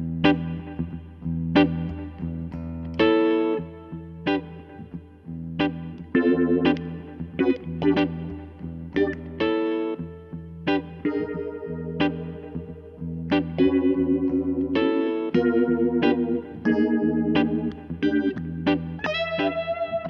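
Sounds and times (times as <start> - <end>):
electric guitar chords and phrases: 0.0 - 20.0.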